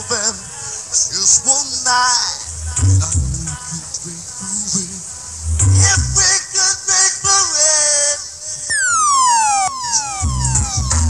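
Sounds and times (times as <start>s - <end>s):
electronic siren zaps: 8.7s - 11.0s.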